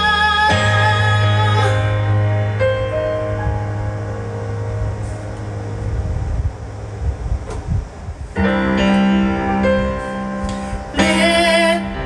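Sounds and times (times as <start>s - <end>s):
synthesizer piano chords: 0.0s - 12.0s.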